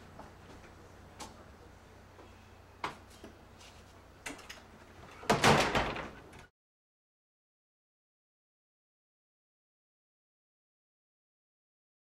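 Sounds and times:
low room hum: 0:00.0 - 0:06.5
door shutting with clatter and rattle: 0:04.2 - 0:06.5.

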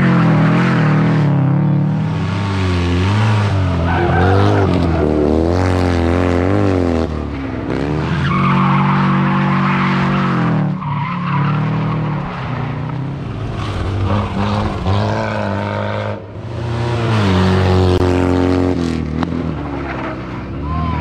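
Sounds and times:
rally car engines revving: 0:00.0 - 0:21.0.

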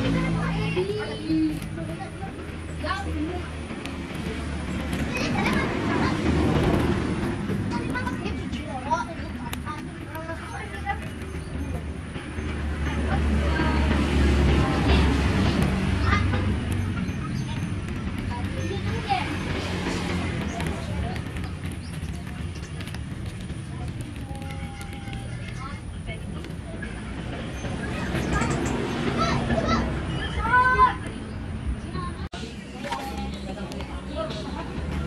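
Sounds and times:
faint distant voices: 0:00.0 - 0:35.0
low traffic rumble: 0:00.0 - 0:35.0.

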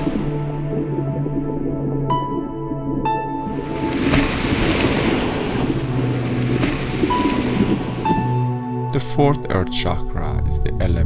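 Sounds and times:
ocean waves on rocky shore: 0:00.0 - 0:00.4, 0:03.4 - 0:08.6
soft background music: 0:00.0 - 0:11.0.

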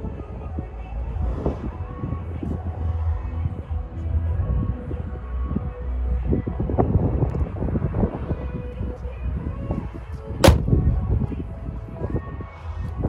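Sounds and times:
car bonnet slamming: 0:10.4 - 0:10.8.

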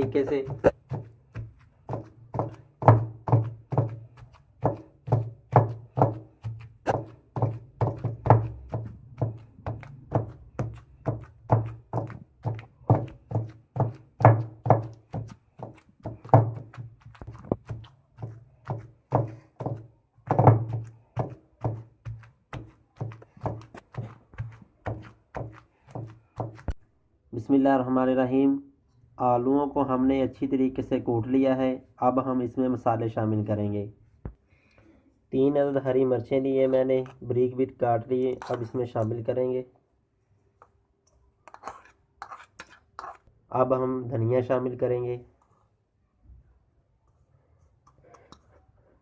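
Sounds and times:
pestle pounding in stone mortar: 0:00.0 - 0:26.8.

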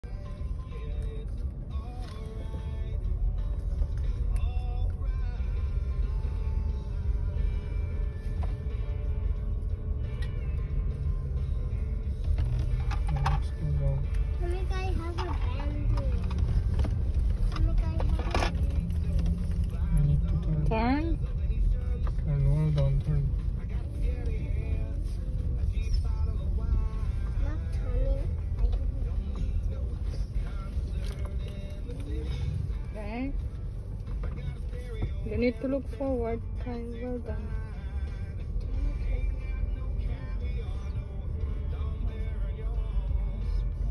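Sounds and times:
car cabin rumble: 0:00.0 - 0:43.9
music playing: 0:00.0 - 0:43.9.

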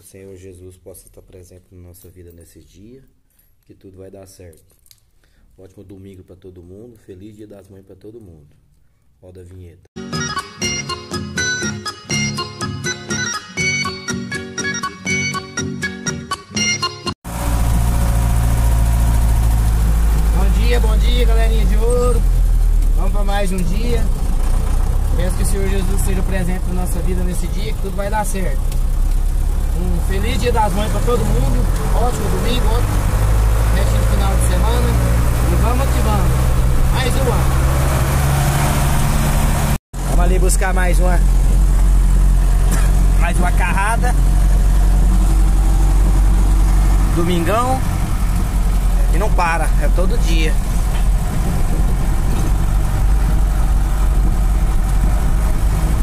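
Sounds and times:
truck engine humming: 0:17.3 - 0:56.0.

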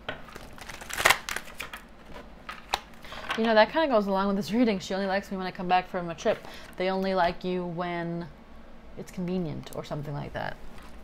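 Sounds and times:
cards being shuffled: 0:00.2 - 0:02.9.

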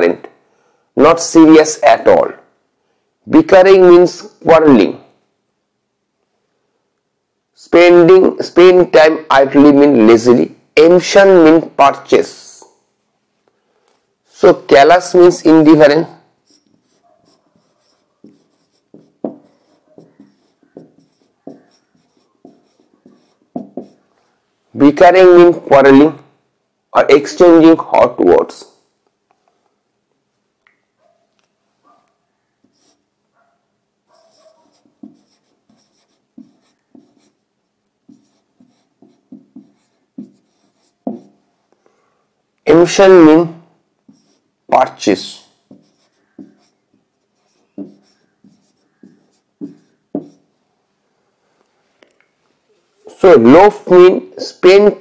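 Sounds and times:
marker pen on whiteboard: 0:14.3 - 0:25.8, 0:31.8 - 0:41.6, 0:44.0 - 0:50.6.

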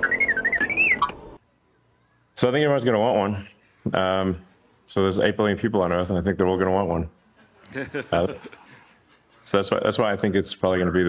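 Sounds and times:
robot warbling chirping beeps: 0:00.0 - 0:01.4.

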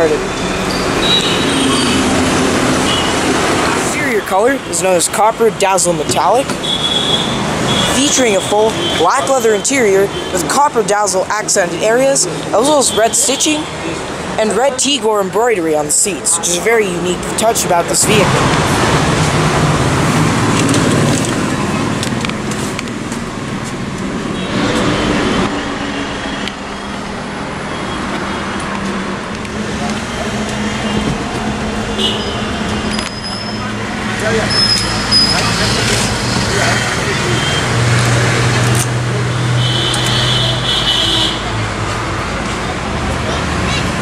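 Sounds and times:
indistinct voices: 0:00.0 - 0:26.9, 0:28.0 - 0:44.0
road traffic noise: 0:00.0 - 0:44.0.

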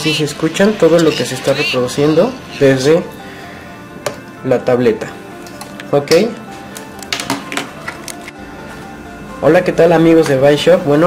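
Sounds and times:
faint music through earphone: 0:00.0 - 0:11.0.

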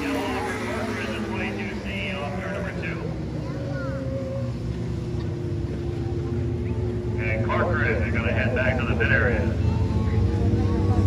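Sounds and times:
race car engines droning: 0:00.0 - 0:11.0
voices: 0:00.0 - 0:11.0.

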